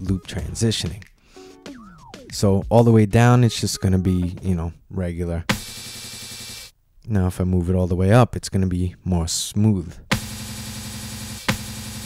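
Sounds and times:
steady looped buzzing tone: 5.5 - 6.7, 10.1 - 12.0.

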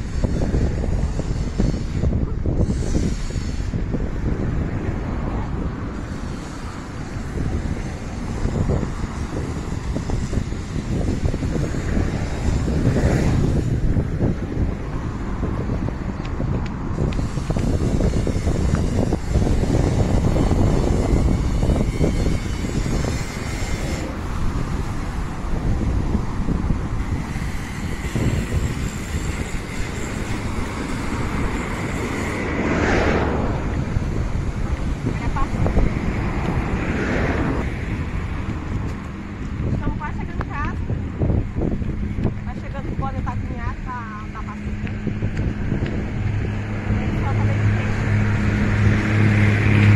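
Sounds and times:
street traffic: 0.0 - 49.9
wind rumbling on microphone: 0.0 - 49.9.

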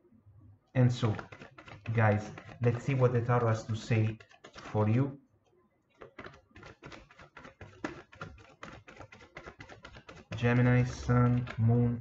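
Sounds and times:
cards being shuffled: 0.8 - 5.0, 6.0 - 11.8.

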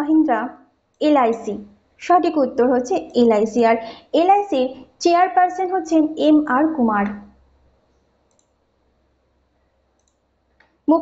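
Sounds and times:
computer mouse clicks: 7.9 - 8.6, 9.9 - 10.8.

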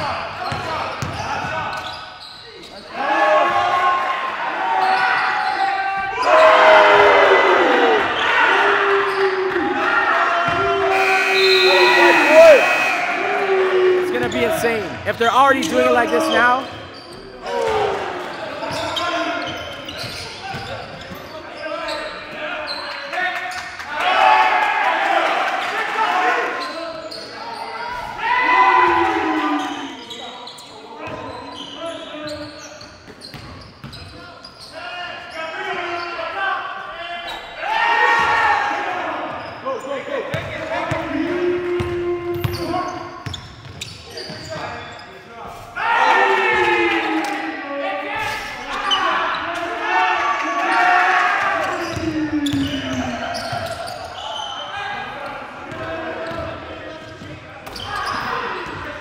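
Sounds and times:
players calling out: 0.2 - 21.2, 37.7 - 43.4, 45.8 - 59.0.

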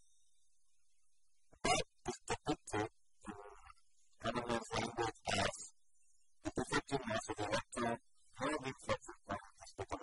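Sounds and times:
man speaking: 1.6 - 3.4, 4.2 - 5.7, 6.4 - 10.0.

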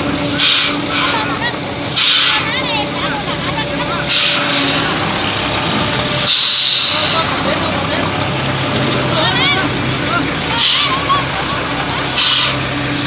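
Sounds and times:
truck diesel engine passing: 0.0 - 13.0
air brake hiss: 0.3 - 1.3, 2.0 - 2.5, 4.1 - 5.1, 6.2 - 7.6, 10.6 - 11.1, 12.1 - 13.0.

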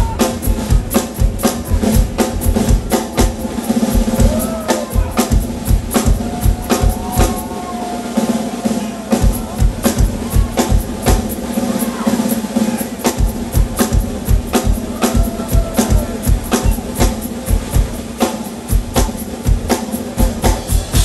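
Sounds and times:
rapid kick drum beats: 0.0 - 21.0
snare and cymbal strokes: 0.0 - 21.0.

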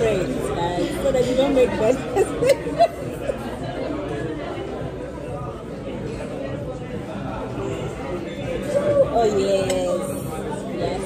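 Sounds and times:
murmur of diners' voices: 0.0 - 11.0.

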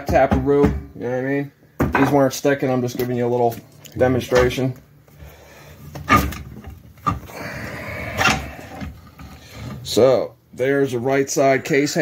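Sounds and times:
metal case halves scraping: 5.9 - 7.3.

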